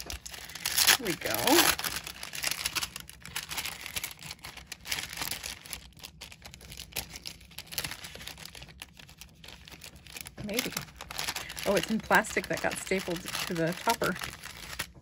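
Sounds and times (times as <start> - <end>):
paper bag rustling and crinkling: 0.0 - 15.0.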